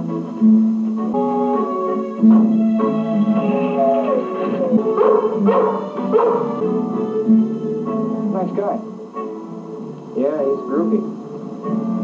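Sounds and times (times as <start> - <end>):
guitar-led music: 0.0 - 12.0
dog barking: 4.8 - 6.6.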